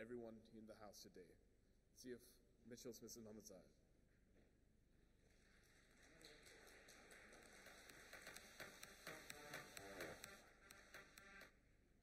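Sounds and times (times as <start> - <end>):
audience clapping: 5.2 - 11.5.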